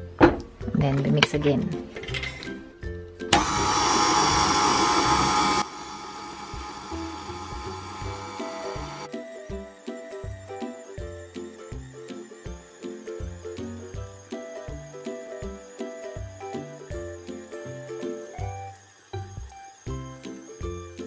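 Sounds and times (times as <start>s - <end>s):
background music with steady beat: 0.0s - 21.0s
stand mixer motor whine: 3.3s - 9.1s.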